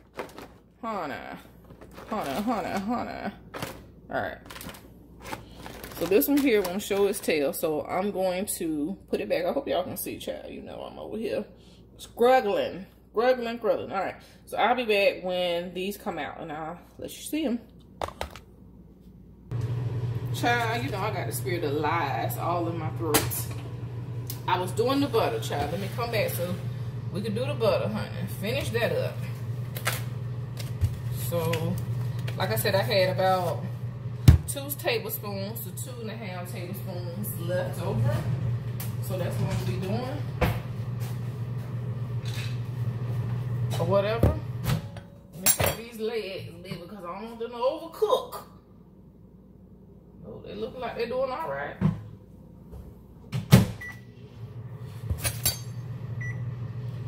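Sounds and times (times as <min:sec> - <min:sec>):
paper wrapper crinkling: 0:04.4 - 0:07.2
low hum: 0:19.4 - 0:45.2.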